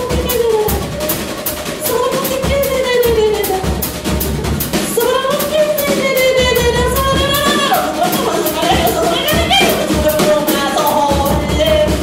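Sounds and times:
drum kit playing: 0.0s - 12.0s.

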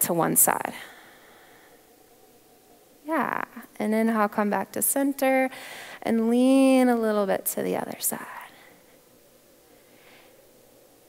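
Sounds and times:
woman speaking: 0.0s - 0.9s, 3.1s - 8.6s.

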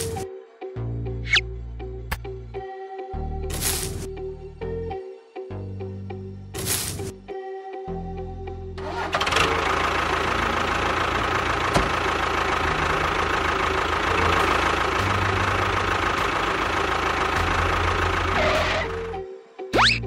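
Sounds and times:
tractor engine running: 0.0s - 0.2s, 8.8s - 19.2s.

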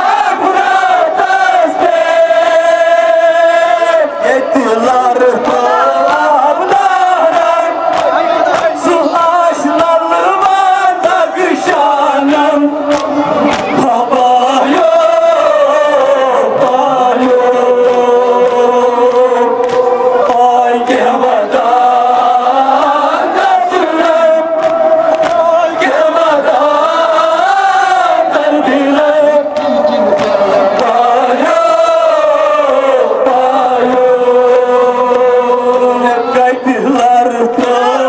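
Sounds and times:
men chanting a lament: 0.0s - 38.0s.

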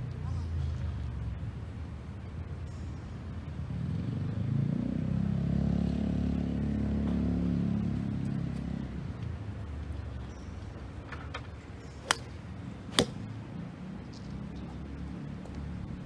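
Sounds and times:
vehicle engine passing by: 3.8s - 9.0s.

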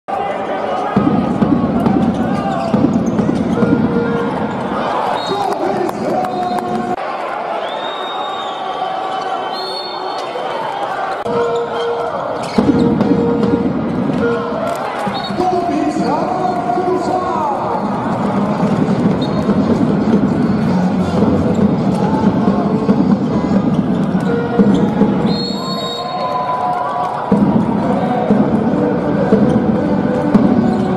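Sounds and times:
crowd chatter: 0.1s - 30.9s
voices echoing in hall: 0.1s - 30.9s.

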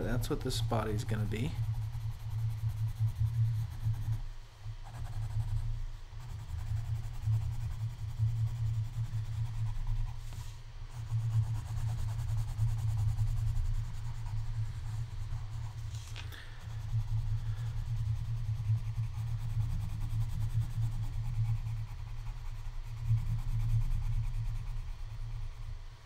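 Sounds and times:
coloured pencil shading on paper: 0.0s - 25.8s.

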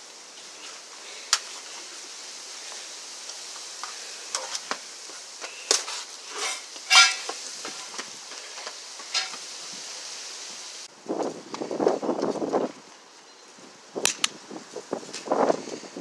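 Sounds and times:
steady hiss: 0.0s - 16.0s
running footsteps: 3.6s - 9.5s
sharp cracks: 14.0s - 14.4s.

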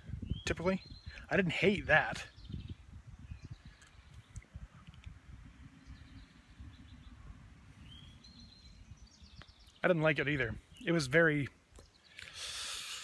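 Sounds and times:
wind buffeting microphone: 0.0s - 9.8s
faint bird chirps: 5.7s - 11.0s.

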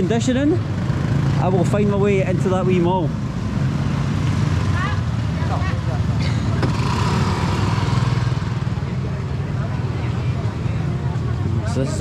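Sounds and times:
scooter engines in traffic: 0.0s - 12.0s
voices: 4.6s - 12.0s.

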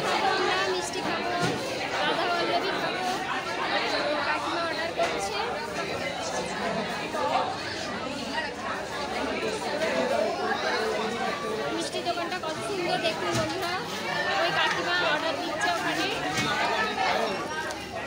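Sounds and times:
chatter of many people: 0.0s - 18.0s.

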